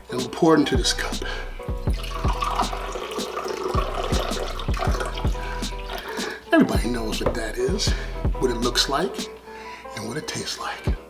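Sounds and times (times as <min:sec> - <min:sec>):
water poured into a glass: 0:01.9 - 0:06.2.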